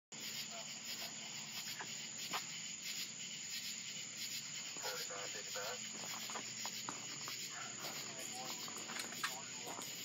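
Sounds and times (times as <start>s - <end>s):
crickets chirping: 0.1s - 10.0s.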